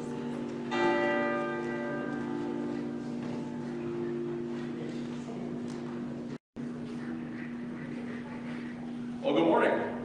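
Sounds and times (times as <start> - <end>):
bell struck: 0.0 - 4.7.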